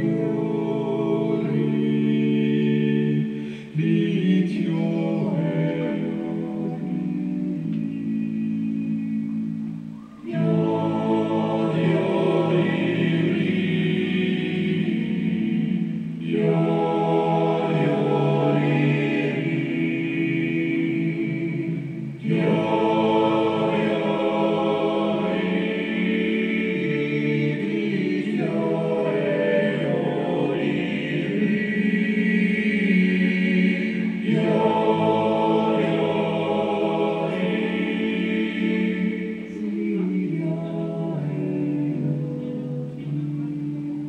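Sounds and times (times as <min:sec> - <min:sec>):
men singing in harmony: 0:00.0 - 0:07.6, 0:10.2 - 0:43.2.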